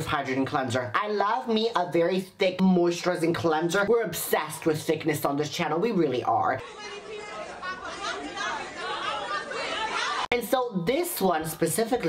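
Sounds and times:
people chattering: 6.1s - 12.0s.

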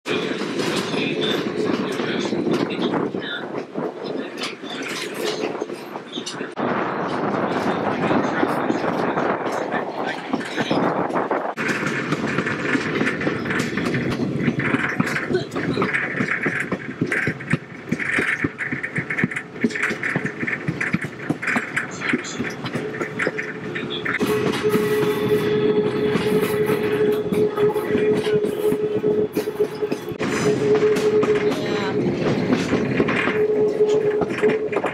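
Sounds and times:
train wheels rattling on track: 0.1s - 34.9s.

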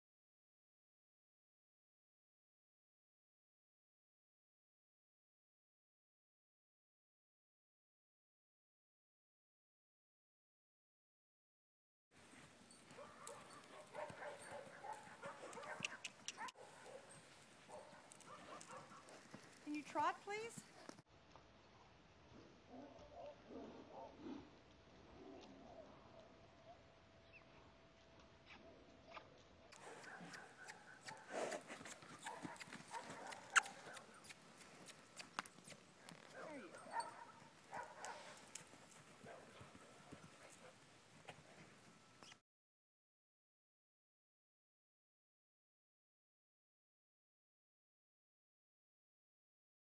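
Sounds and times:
horse hoofbeats clip-clopping: 12.2s - 21.5s, 28.0s - 42.4s.

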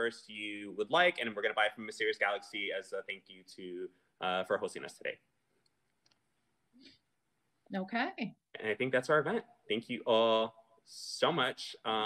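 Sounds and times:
faint short voice sound: 0.0s - 5.1s, 8.6s - 12.0s
person speaking: 0.0s - 5.2s, 7.8s - 12.0s.

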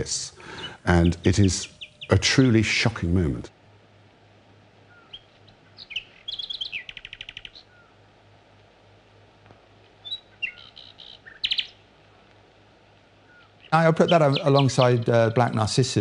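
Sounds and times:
steady low hum: 0.0s - 16.0s
bird chirps and trills: 0.4s - 2.8s, 4.8s - 8.0s, 10.0s - 11.9s, 13.2s - 15.8s.

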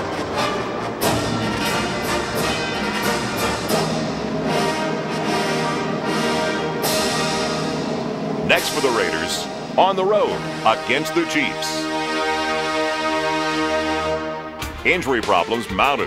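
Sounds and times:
orchestral brass music: 0.0s - 15.8s.

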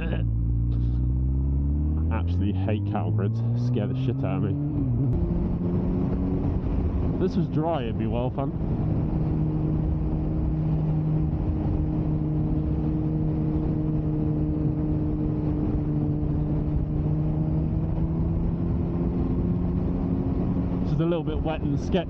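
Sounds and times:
motorcycle engine cruising: 0.0s - 22.0s
wind and road noise: 0.0s - 22.0s.

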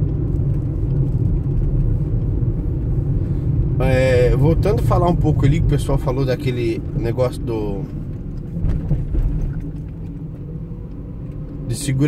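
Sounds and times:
car driving at low speed: 0.0s - 12.0s.

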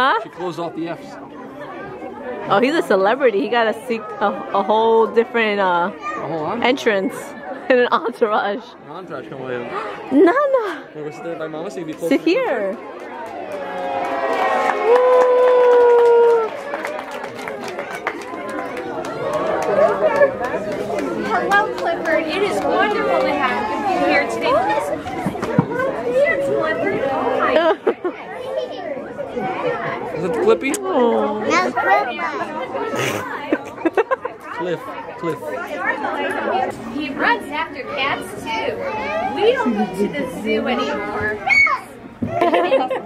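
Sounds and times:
crowd chatter: 0.0s - 43.0s.

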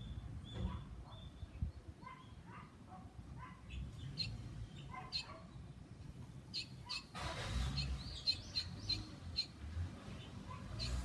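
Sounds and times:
swallow chirping: 6.5s - 11.0s.

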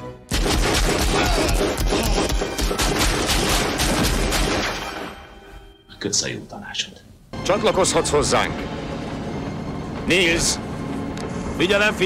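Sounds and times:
rapid pistol shots: 0.3s - 5.0s.

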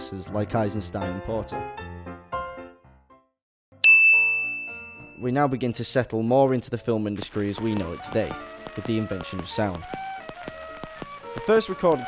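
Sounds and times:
bright bell-like ding: 3.8s - 5.6s.

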